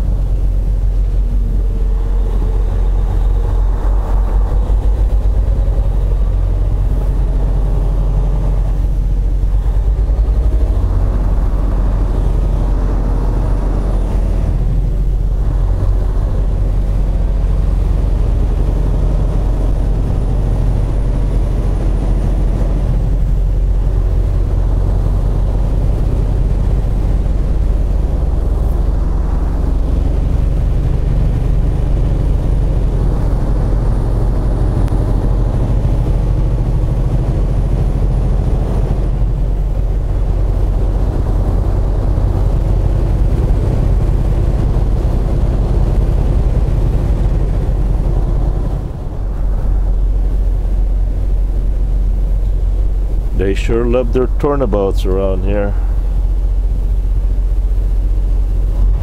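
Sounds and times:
road noise: 0.0s - 59.0s
truck diesel engine droning: 0.0s - 59.0s.

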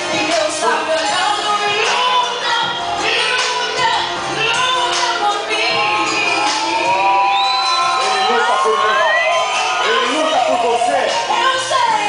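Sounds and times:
audience cheering and whooping: 5.4s - 12.0s.

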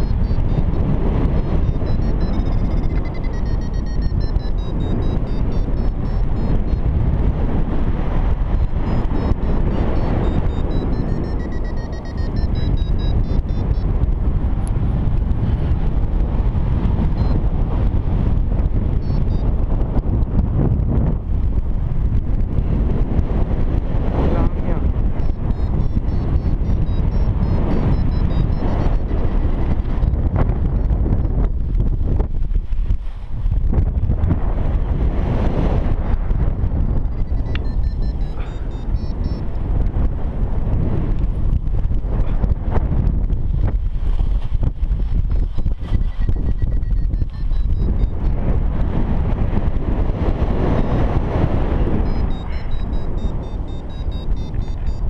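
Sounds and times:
variometer beeping: 0.0s - 15.3s, 16.1s - 20.2s, 24.4s - 32.0s, 36.1s - 40.1s, 45.2s - 48.6s, 49.3s - 55.0s
wind rushing over microphone: 0.0s - 55.0s.

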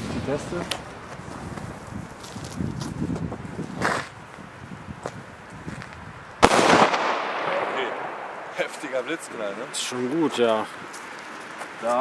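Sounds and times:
firecracker bang: 6.4s - 9.0s.

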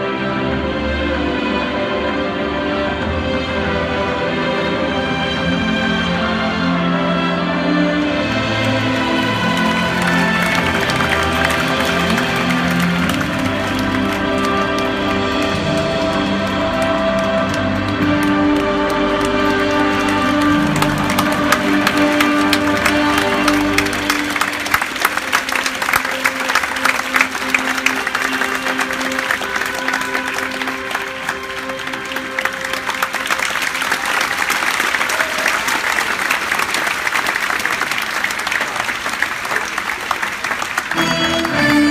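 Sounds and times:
music playing: 0.0s - 36.3s, 40.5s - 41.9s
audience applauding: 7.8s - 41.9s.

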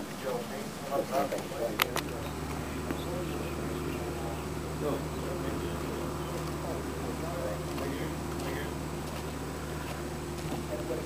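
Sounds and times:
faint voices: 0.0s - 11.0s
machinery droning: 0.0s - 11.0s.

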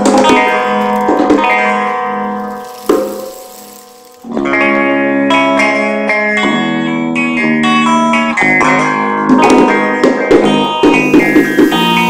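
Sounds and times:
guitar chords ringing: 0.0s - 12.0s.

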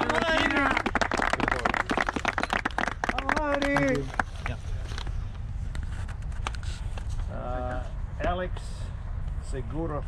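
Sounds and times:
people clapping: 0.0s - 4.6s.

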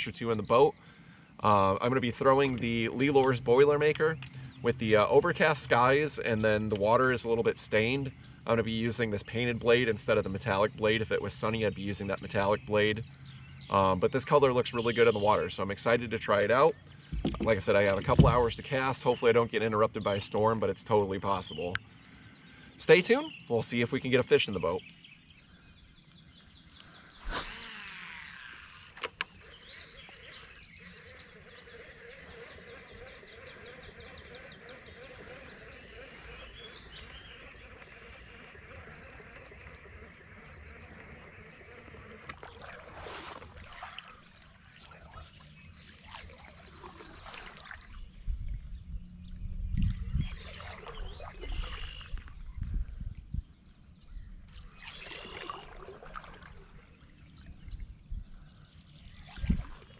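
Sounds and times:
fishing line whizzing off spool: 27.2s - 36.6s, 37.4s - 44.6s, 49.8s - 52.5s, 54.5s - 56.9s
fishing reel whirring: 27.2s - 44.2s
water splashing: 27.2s - 48.3s, 49.8s - 52.5s, 54.5s - 57.9s, 59.1s - 59.9s.

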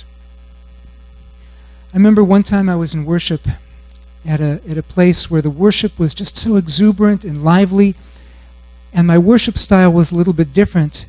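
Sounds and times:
low electrical mains hum: 0.0s - 11.0s
person speaking: 1.9s - 8.1s, 8.9s - 11.0s.

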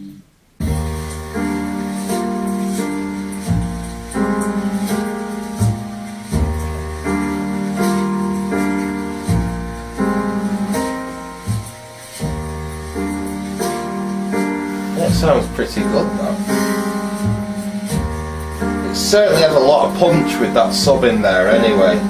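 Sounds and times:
jazz piano and bass: 0.0s - 22.0s.

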